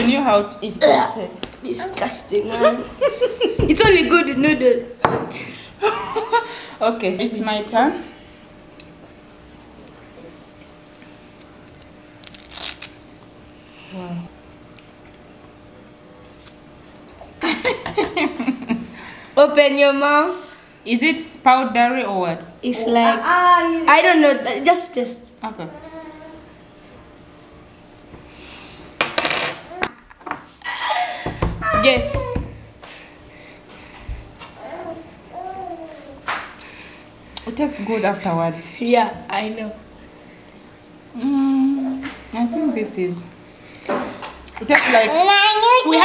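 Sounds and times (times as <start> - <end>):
laughter: 2.6 - 3.7, 5.8 - 6.5, 17.4 - 18.9
rustling tearing noise: 10.6 - 13.0.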